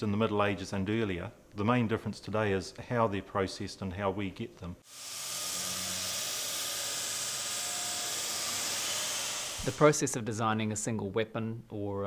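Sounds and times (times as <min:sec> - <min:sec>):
steady high hiss: 0:04.8 - 0:10.4.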